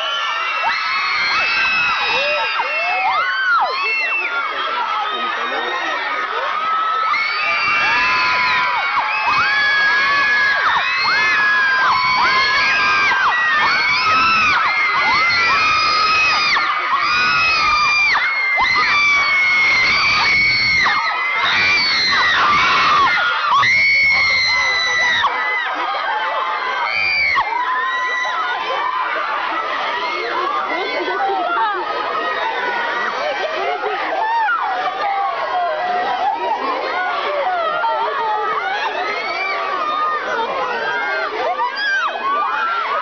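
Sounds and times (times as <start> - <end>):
crowd of fans screaming: 0.0 - 43.0.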